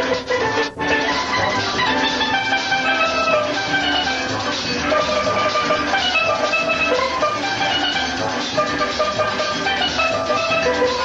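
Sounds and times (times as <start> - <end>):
drum beat: 0.0 - 11.0
steel pan notes: 0.0 - 11.0.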